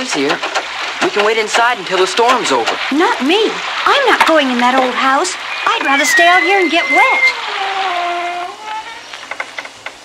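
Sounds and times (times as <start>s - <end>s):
rain hiss: 0.0s - 10.0s
held tone: 4.8s - 9.0s.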